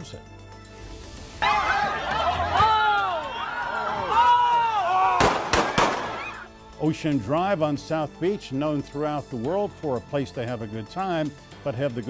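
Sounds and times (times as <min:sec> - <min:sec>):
crowd shouting and laughing: 0:01.4 - 0:06.5
sharp loud bangs: 0:05.2 - 0:06.2.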